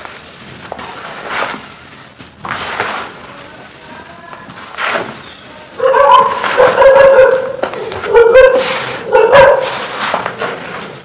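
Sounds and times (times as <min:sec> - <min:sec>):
dry mix crunching: 0:00.0 - 0:11.0.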